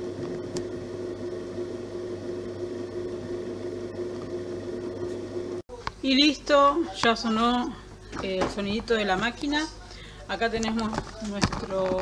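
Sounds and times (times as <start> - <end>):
bread machine motor humming: 0.0 - 5.6.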